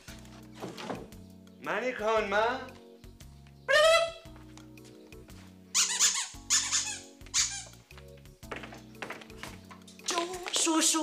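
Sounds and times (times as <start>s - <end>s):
background music with low notes: 0.0s - 11.0s
short high-pitched squeaks: 5.8s - 7.8s.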